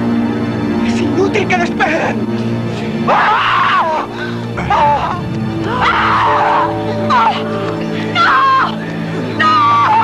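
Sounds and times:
dramatic orchestral music: 0.0s - 10.0s
harsh wavering cries: 3.0s - 10.0s.

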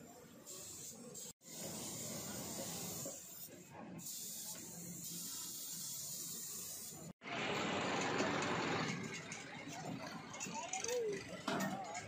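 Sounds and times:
spray gun hissing: 0.5s - 7.1s.

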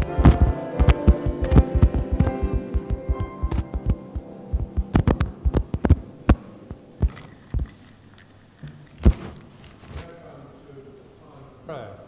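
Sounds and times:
hymn accompaniment chord: 0.0s - 7.0s
sharp thumps and knocks: 0.0s - 7.8s, 8.7s - 10.0s.

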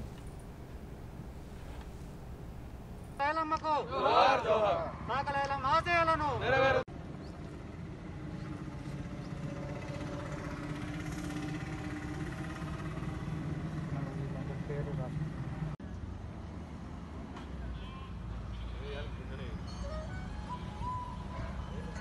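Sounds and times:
faint low hum: 0.0s - 3.2s
outdoor background noise: 0.0s - 22.0s.

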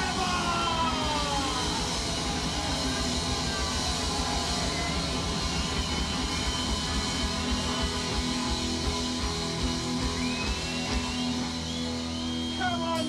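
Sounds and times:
punk rock band playing live: 0.0s - 13.0s.

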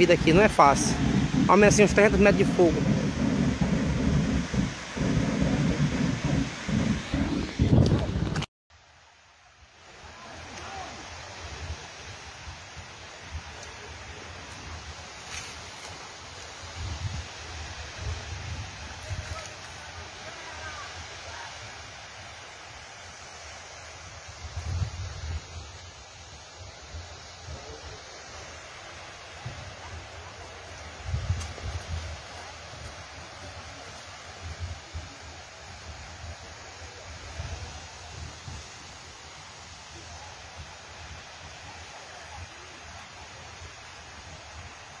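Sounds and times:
wind rumbling on microphone: 0.0s - 8.5s, 10.4s - 45.0s
outdoor hiss: 0.0s - 45.0s.

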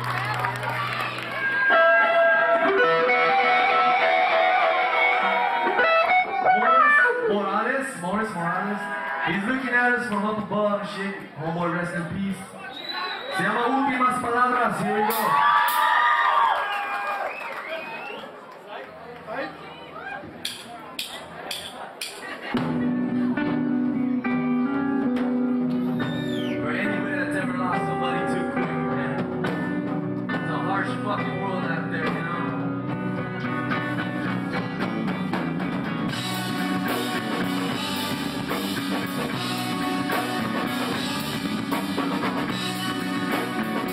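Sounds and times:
electric guitar held notes: 0.0s - 7.3s, 22.6s - 30.4s, 32.5s - 43.9s
ska band playing: 0.0s - 8.0s, 15.0s - 15.9s, 20.5s - 43.9s.

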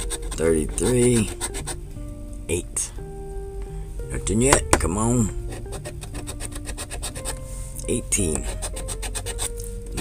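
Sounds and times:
coin scraping scratch card: 0.0s - 1.7s, 5.8s - 7.4s, 8.4s - 9.5s.

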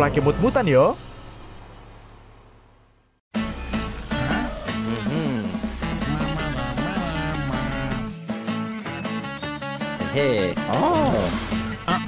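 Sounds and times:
low vehicle engine hum: 0.0s - 8.2s.

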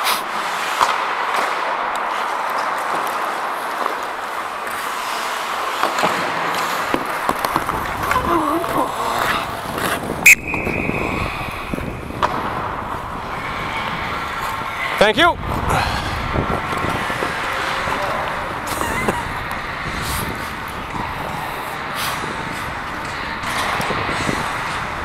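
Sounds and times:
hockey sticks and pucks clicking: 0.0s - 25.0s
skates scraping ice: 0.0s - 25.0s.

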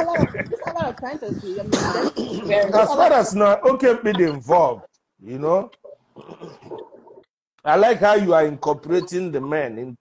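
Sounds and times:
people talking on a video call: 0.0s - 10.0s.

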